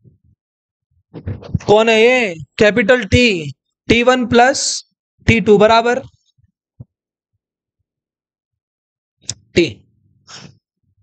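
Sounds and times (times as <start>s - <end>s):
man saying a letter: 1.6s - 4.6s.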